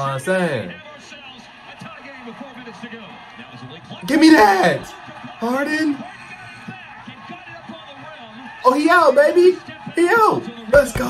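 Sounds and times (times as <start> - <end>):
arena crowd noise: 0.0 - 11.0
commentator talking: 0.0 - 11.0.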